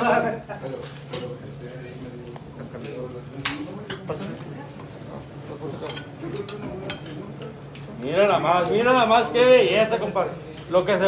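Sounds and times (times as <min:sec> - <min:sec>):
faint voices talking: 0:00.0 - 0:11.0
grill clicks and crackles: 0:00.6 - 0:11.0.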